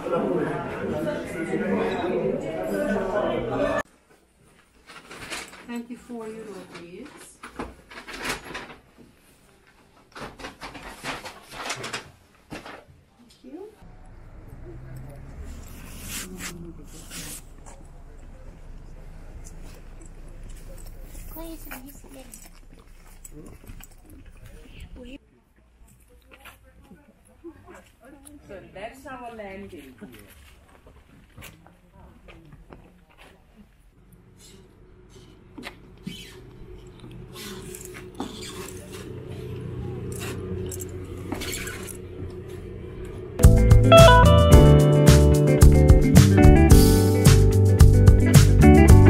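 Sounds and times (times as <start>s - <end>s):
people talking: 0.0s - 3.8s, 5.7s - 7.4s, 13.2s - 22.5s, 23.3s - 25.2s, 37.6s - 41.9s
boat engine humming: 13.8s - 25.1s, 34.0s - 44.6s
knocks and footsteps: 19.4s - 27.1s, 29.2s - 33.9s, 35.2s - 44.0s
steady low rumble: 34.0s - 44.0s
guitar background music: 43.4s - 49.0s.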